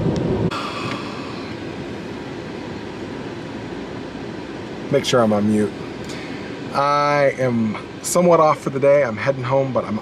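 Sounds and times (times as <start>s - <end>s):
road noise inside car: 0.0s - 10.0s
ventilation fan hiss: 0.0s - 10.0s.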